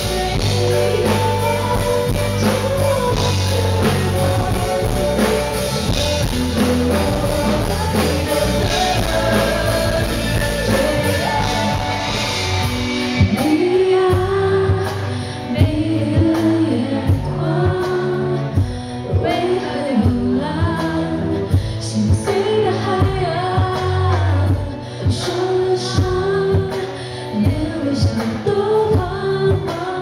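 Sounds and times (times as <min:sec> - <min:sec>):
steady drum beat: 0:00.0 - 0:18.0
guitars: 0:00.0 - 0:30.0
keyboards: 0:00.0 - 0:30.0
woman singing lead: 0:00.0 - 0:30.0.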